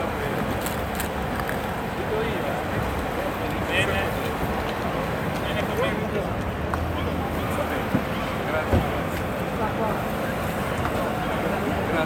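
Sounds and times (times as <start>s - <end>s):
outdoor background noise: 0.0s - 12.0s
people talking in a crowd: 0.0s - 12.0s.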